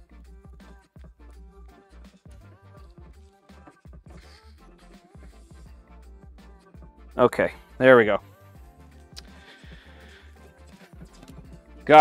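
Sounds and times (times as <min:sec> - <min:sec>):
faint background music: 0:00.0 - 0:12.0
man speaking: 0:07.2 - 0:08.2.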